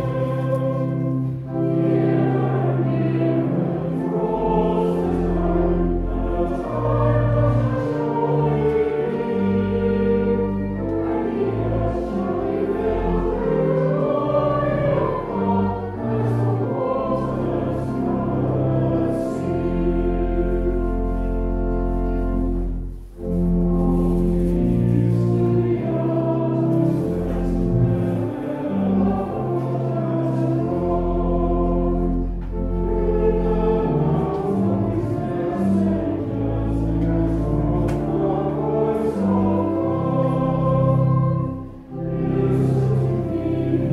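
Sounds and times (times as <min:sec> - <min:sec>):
congregation singing a hymn: 0:00.0 - 0:43.9.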